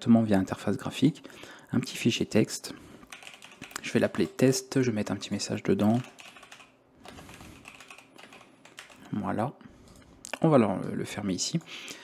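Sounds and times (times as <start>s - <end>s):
typing on computer keyboard: 3.1s - 4.4s, 5.8s - 9.2s.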